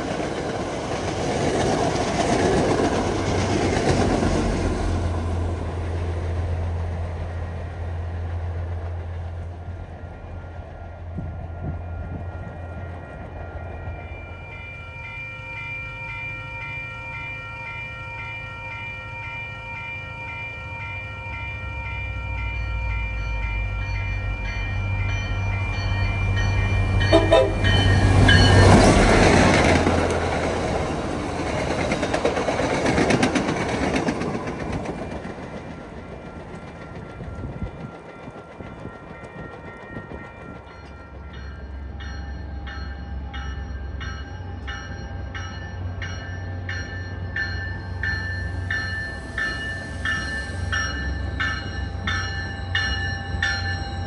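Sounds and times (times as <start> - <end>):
train warning signal: 11.2 - 30.4
locomotive engine rumble: 26.3 - 32.4
train wheels clattering: 26.4 - 41.7.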